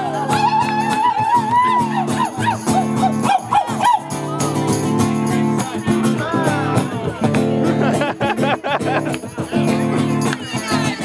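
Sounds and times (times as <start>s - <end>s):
acoustic guitar strumming: 0.0s - 11.0s
short rising-and-falling yelps: 0.9s - 4.2s.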